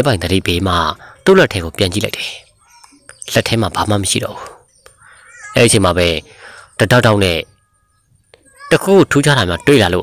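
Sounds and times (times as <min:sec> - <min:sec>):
man narrating: 0:00.0 - 0:04.6, 0:05.4 - 0:07.6, 0:08.6 - 0:10.0.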